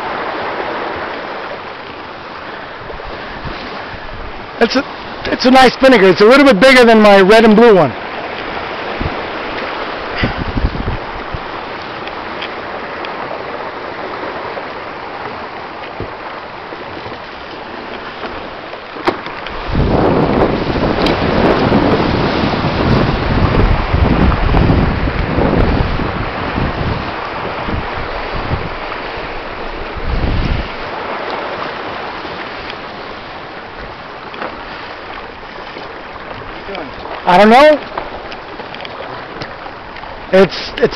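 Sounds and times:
rushing water: 0:00.0 - 0:40.9
rushing wind: 0:00.0 - 0:40.9
wind buffeting microphone: 0:00.0 - 0:40.9.

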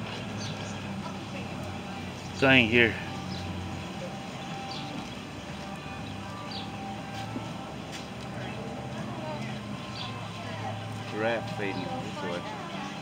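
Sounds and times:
distant voices: 0:00.0 - 0:13.0.

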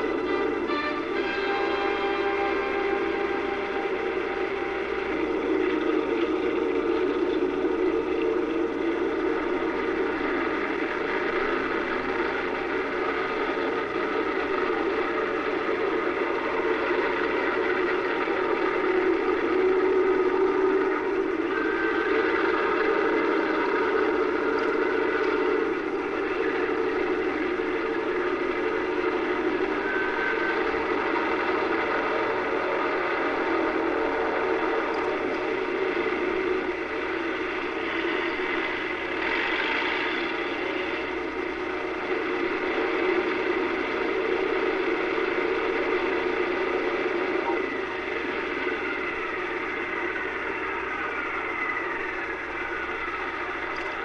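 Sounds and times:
piston aircraft engines droning: 0:00.0 - 0:54.0.

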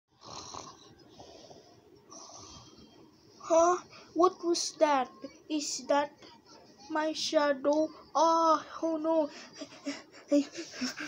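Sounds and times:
child pretend snoring: 0:00.2 - 0:00.9, 0:02.1 - 0:02.8.

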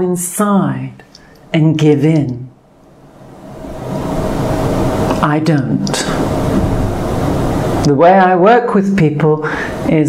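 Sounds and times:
loud rushing rumble: 0:02.6 - 0:08.1.

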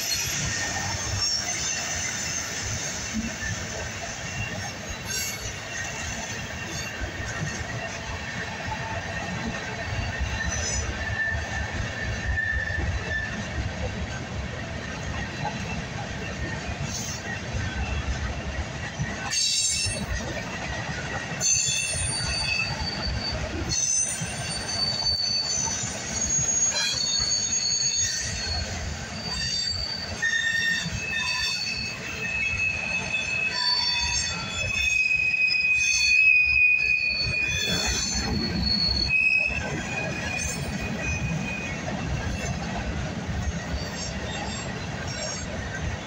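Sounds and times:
high wheel squeals: 0:00.0 - 0:13.8, 0:14.9 - 0:46.0
train wheels rumbling on rail: 0:00.0 - 0:46.0.

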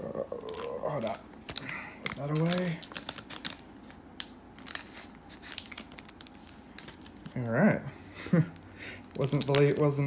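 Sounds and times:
cards and plastic packaging rustling: 0:00.2 - 0:10.0.

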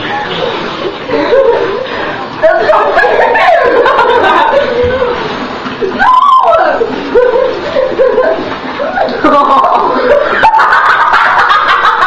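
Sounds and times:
excited chatter: 0:00.0 - 0:12.0
girls laughing and squealing: 0:00.9 - 0:12.0.

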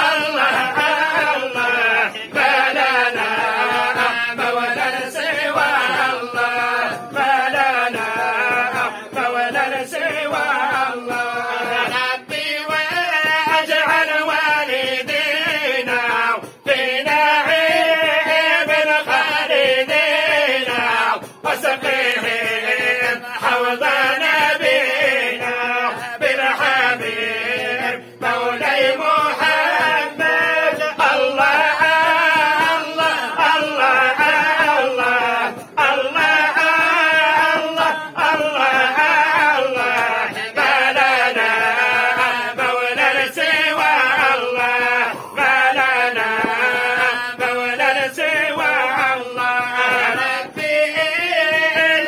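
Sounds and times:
men chanting together: 0:00.0 - 0:52.0.

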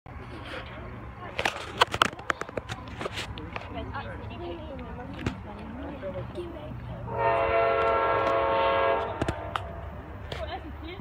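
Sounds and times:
people talking: 0:00.3 - 0:07.2, 0:10.2 - 0:11.0.

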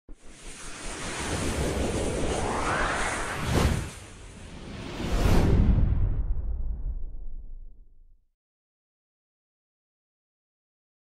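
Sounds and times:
whoosh: 0:00.1 - 0:08.0.

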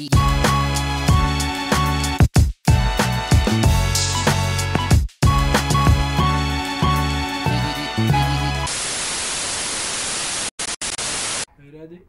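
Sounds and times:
white-noise static: 0:08.7 - 0:11.5.

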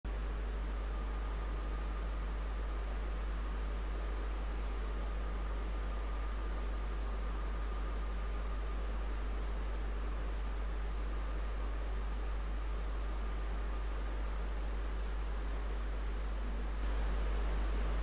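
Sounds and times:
constant low hum: 0:00.1 - 0:18.0
faint high whine: 0:00.1 - 0:18.0.

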